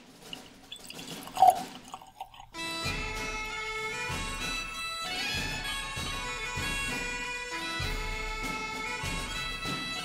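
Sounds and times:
liquid glug: 0.3 - 2.6
liquid pouring into glass: 0.4 - 2.6
bagpipe music: 1.3 - 10.0.

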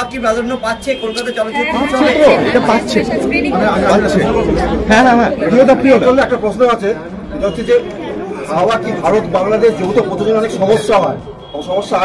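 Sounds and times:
people talking chatter: 0.0 - 12.0.

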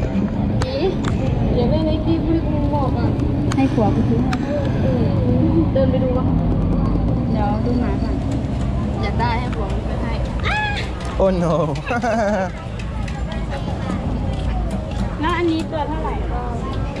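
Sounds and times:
people talking: 0.6 - 17.0.

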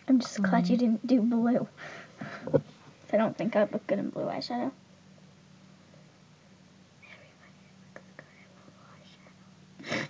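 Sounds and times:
low room hum: 0.0 - 10.0
faint whispering: 7.0 - 9.6.

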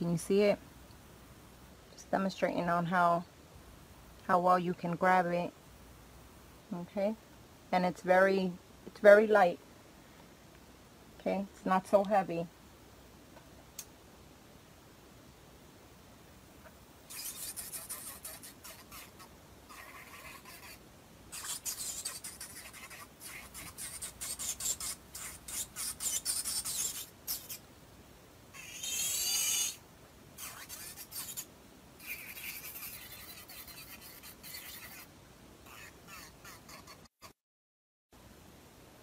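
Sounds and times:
electric nail drill filing: 21.4 - 27.6, 28.8 - 29.8.

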